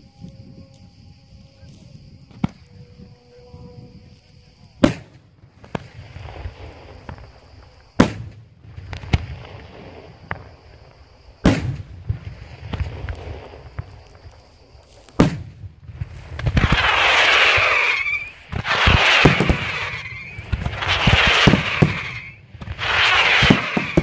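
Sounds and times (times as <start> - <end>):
fireworks bursting with rumble: 1.4 - 24.0.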